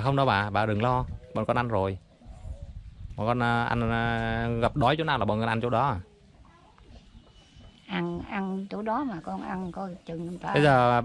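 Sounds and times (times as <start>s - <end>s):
soft indistinct distant sounds: 0.0s - 11.0s
person speaking: 10.1s - 11.0s.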